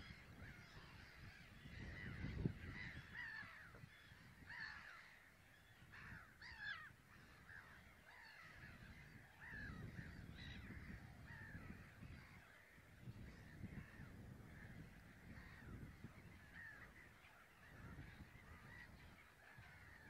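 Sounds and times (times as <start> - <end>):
birds calling: 0.0 - 20.0.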